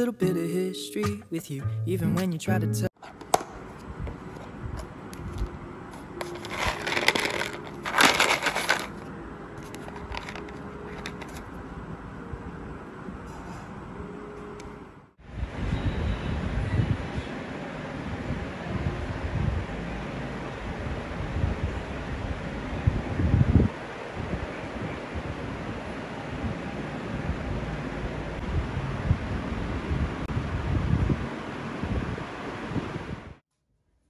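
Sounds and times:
wind buffeting microphone: 0:20.8 - 0:25.8, 0:28.4 - 0:33.4.

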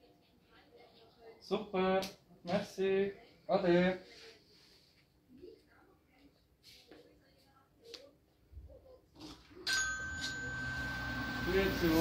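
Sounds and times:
steady electronic entry tone: 0:10.3 - 0:12.0.

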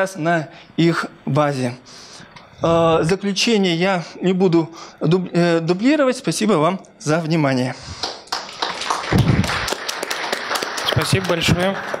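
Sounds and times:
audience applause: 0:08.0 - 0:12.0.

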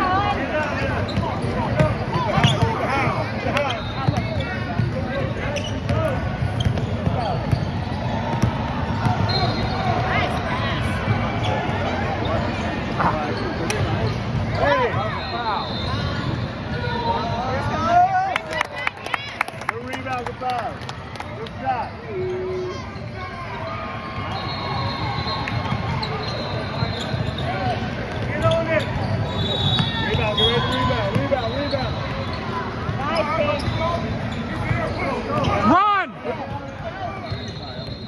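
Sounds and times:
spectator chatter: 0:00.0 - 0:38.0
sneakers squeaking on court: 0:00.8 - 0:16.8, 0:21.8 - 0:35.8, 0:36.4 - 0:38.0
basketball bouncing: 0:05.9 - 0:09.2.

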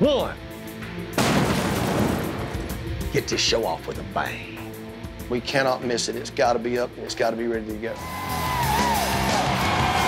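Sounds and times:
background music: 0:00.0 - 0:10.0
explosion blast: 0:01.2 - 0:02.9.

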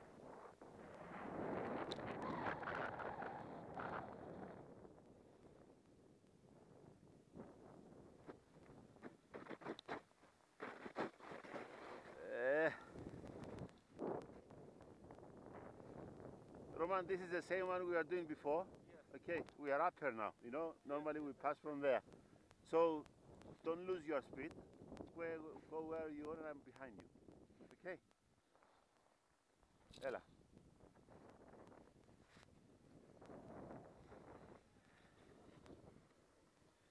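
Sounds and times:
faint low hiss: 0:00.0 - 0:36.9
faint wind: 0:00.0 - 0:36.9
snowboard scraping over crusty snow: 0:08.2 - 0:14.3.

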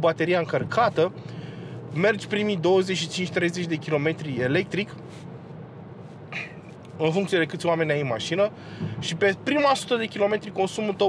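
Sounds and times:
steady low background noise: 0:00.0 - 0:11.0
intake of breath: 0:01.2 - 0:01.9, 0:08.6 - 0:09.0.

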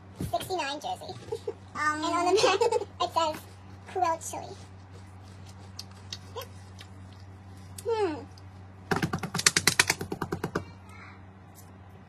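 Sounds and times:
rapid sharp taps: 0:08.9 - 0:10.7.

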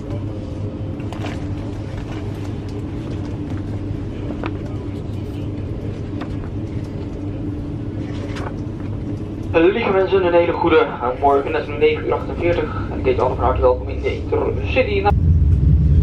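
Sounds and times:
train carriage rumble and hum: 0:00.0 - 0:16.0.

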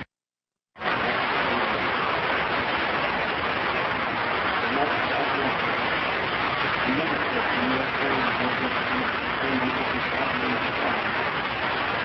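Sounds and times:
heavy recording hiss: 0:00.8 - 0:12.0.

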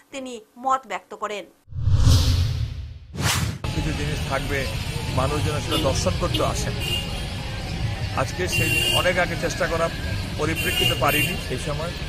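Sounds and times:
sharp whoosh: 0:01.7 - 0:03.7
whooshing rush with rumble: 0:01.7 - 0:03.8.

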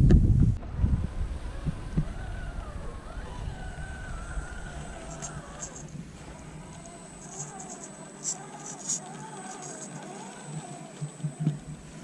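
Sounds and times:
wind rumble on microphone: 0:00.0 - 0:09.8
toy car motor whining: 0:01.5 - 0:12.0.

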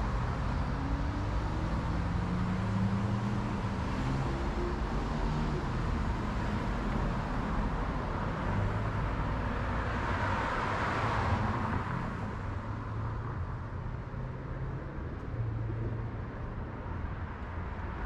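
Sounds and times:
low hum of traffic: 0:00.0 - 0:18.0.

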